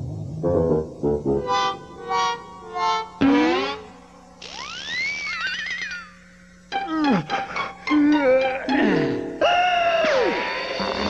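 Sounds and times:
cartoon magic whistling hiss: 1.5 - 6.4.

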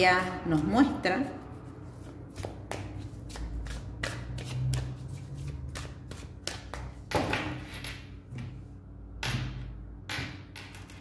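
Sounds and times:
cards being shuffled: 1.9 - 7.0.

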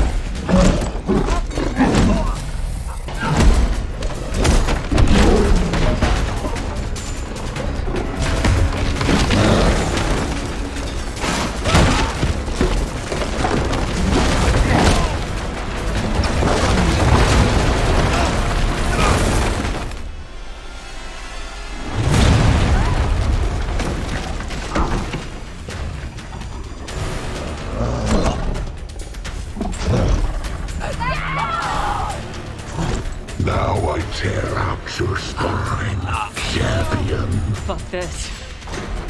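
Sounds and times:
film score music: 0.0 - 39.0
breaking timber crash: 8.2 - 20.1
wood smashing and splintering: 8.2 - 20.1, 22.0 - 26.1.

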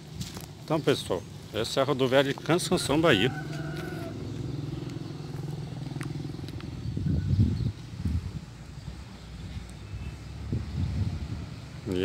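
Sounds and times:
low rumbles: 0.0 - 12.0
vehicle engine humming: 0.0 - 12.0.

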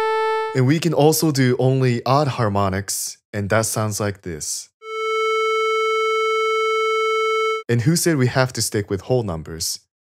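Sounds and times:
steady synth tone: 4.8 - 7.6.

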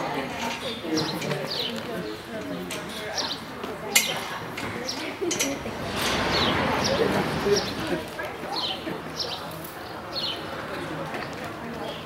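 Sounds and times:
indistinct background voices: 0.0 - 12.0.

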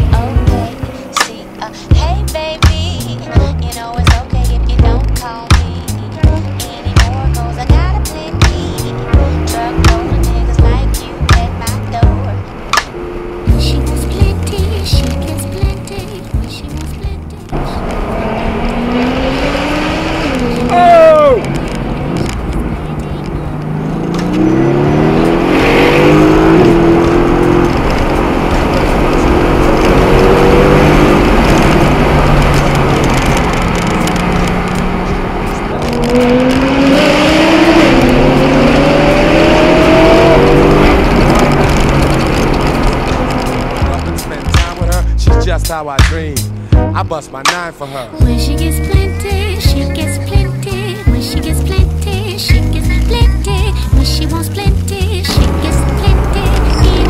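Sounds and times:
car engine accelerating: 0.0 - 57.0.

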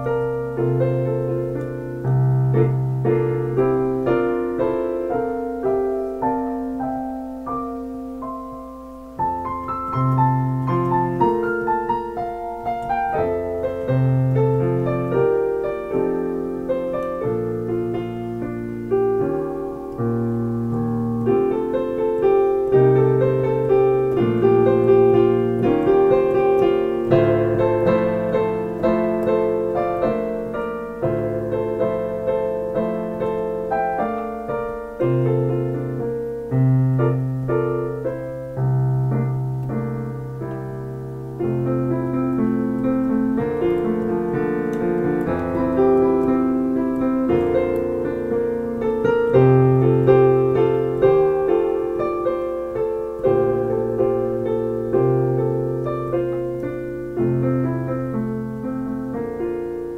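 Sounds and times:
solo piano bossa nova: 0.0 - 59.9.

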